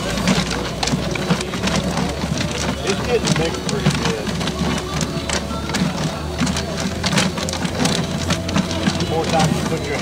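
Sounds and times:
paper tickets rustling in drum: 0:00.0 - 0:10.0.

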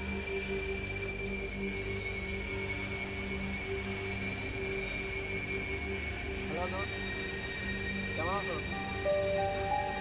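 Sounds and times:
eerie drone music: 0:00.0 - 0:10.0.

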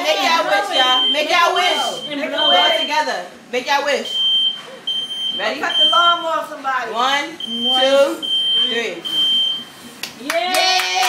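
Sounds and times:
high electronic beep: 0:00.7 - 0:03.0
people clapping: 0:10.0 - 0:11.0
small group cheering: 0:10.2 - 0:11.0.

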